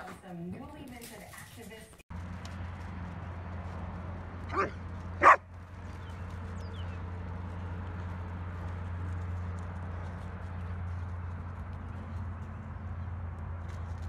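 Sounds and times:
dog barking: 4.5 - 5.4.

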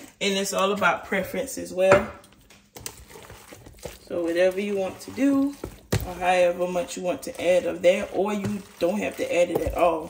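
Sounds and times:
spatula stirring salad: 0.0 - 10.0.

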